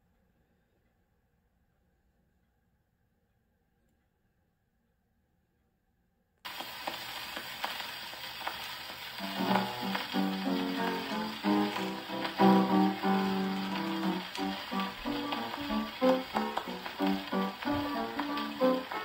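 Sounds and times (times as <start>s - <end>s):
record surface hiss and crackle: 6.5s - 19.0s
piano introduction: 9.2s - 19.0s.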